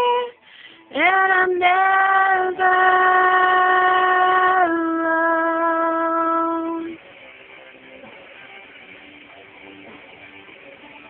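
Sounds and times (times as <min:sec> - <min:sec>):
woman singing long notes: 0:00.0 - 0:07.0.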